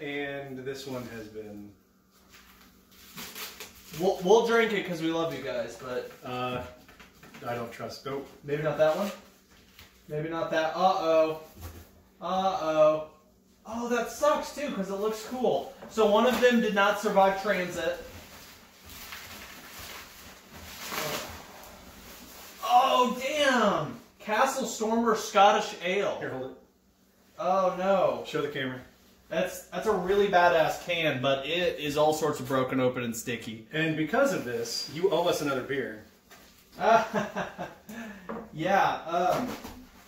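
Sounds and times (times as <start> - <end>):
plastic wrapping crinkling: 2.2 - 5.5, 15.1 - 22.8.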